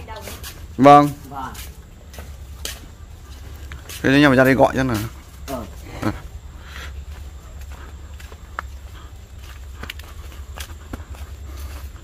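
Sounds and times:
footsteps crunching on dirt path: 0:00.0 - 0:12.0
steady low rumble: 0:00.0 - 0:12.0.

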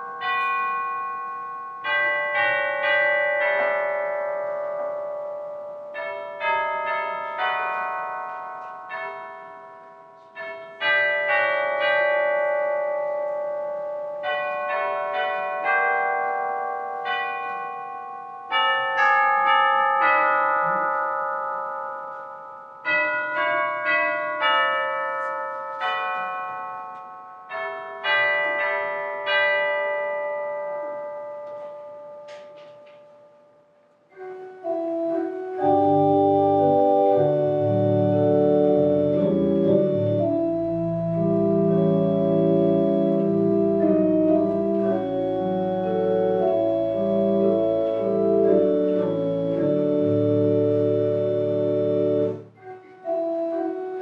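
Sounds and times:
bell chimes playing melody: 0:00.0 - 0:33.4.

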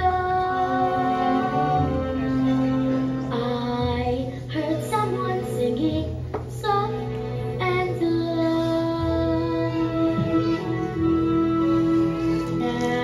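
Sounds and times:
child singing: 0:00.0 - 0:01.7, 0:03.3 - 0:11.0, 0:11.7 - 0:13.0
instrumental accompaniment: 0:00.0 - 0:13.0.

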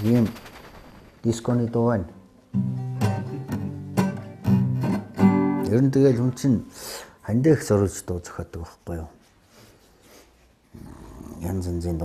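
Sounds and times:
voice: 0:00.0 - 0:00.5, 0:01.2 - 0:02.2, 0:05.6 - 0:09.2, 0:10.8 - 0:12.0
low hum: 0:00.0 - 0:02.5.

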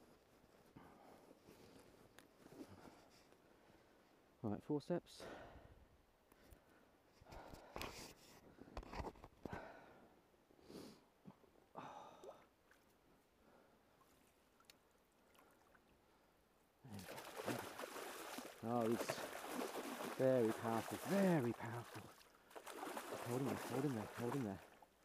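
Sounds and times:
fish thrashing in water: 0:17.0 - 0:24.9.

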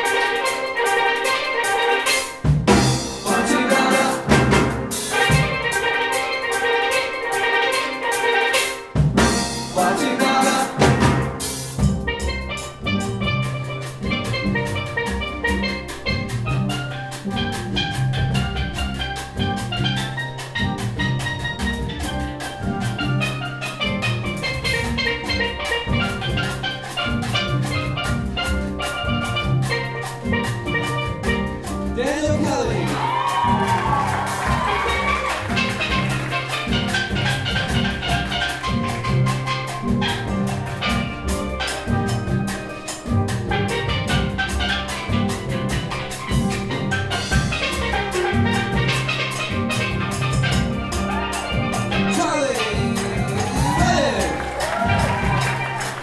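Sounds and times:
drum kit: 0:00.0 - 0:56.0
latin hand percussion: 0:00.0 - 0:56.0
steel pans playing: 0:00.0 - 0:56.0
bass pans: 0:10.8 - 0:56.0.

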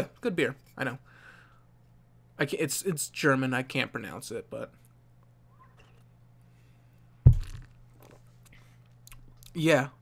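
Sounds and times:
bottle set down on desk: 0:07.3 - 0:07.8.

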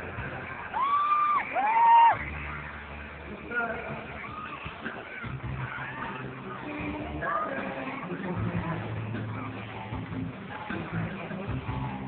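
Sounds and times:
crowd screaming and cheering: 0:00.0 - 0:12.0.

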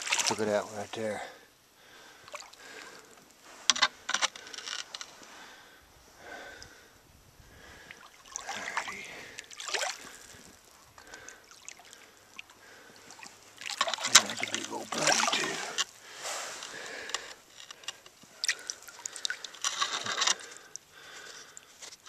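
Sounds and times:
creek water sloshing and splashing: 0:00.0 - 0:00.8, 0:02.2 - 0:03.0, 0:07.6 - 0:21.8.

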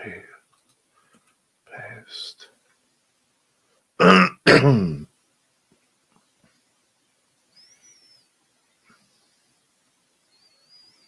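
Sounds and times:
faint high-pitched whistles: 0:07.0 - 0:11.0.

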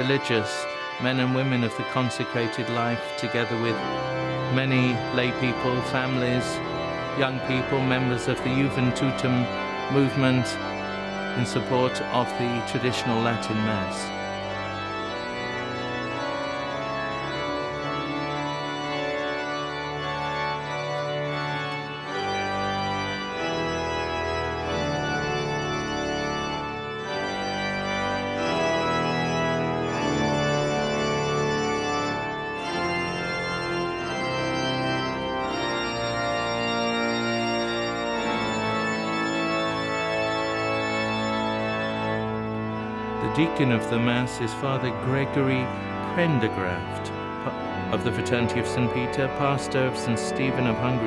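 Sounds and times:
pipe organ playing held chords: 0:00.0 - 0:51.0.

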